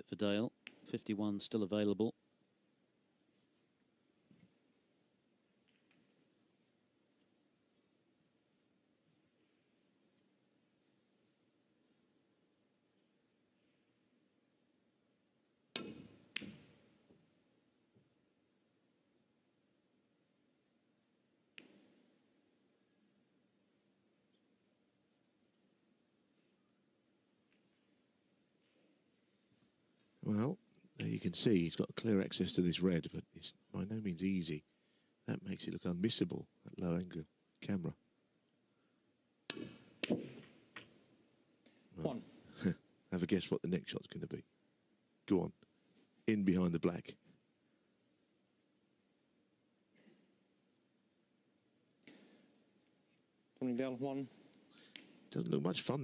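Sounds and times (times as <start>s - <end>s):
snooker balls clicking together: 39.5s - 41.1s.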